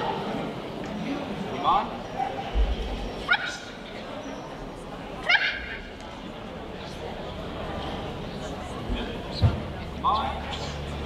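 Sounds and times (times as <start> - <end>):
dog yipping: 3.2 - 3.7, 5.2 - 5.9.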